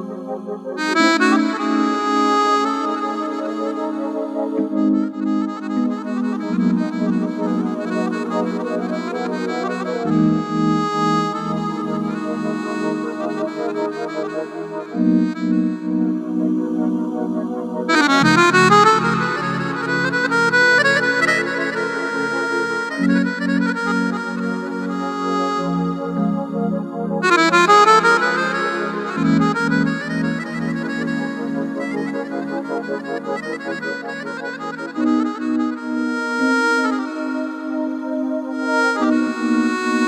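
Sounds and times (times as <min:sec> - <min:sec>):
keyboard with accordion voice: 0:00.0 - 0:40.0.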